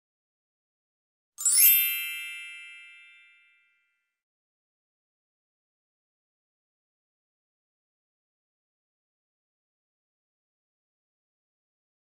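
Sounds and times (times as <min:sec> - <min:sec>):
bright bell-like ding: 0:01.4 - 0:03.8.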